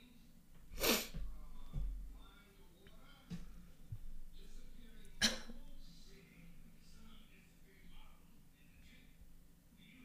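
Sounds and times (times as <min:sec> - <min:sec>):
person sneezing: 0:00.8 - 0:01.2.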